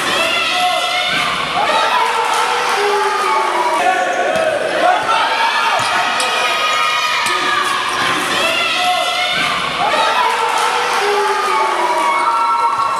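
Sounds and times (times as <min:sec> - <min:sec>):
players and spectators shouting: 0:00.0 - 0:12.9.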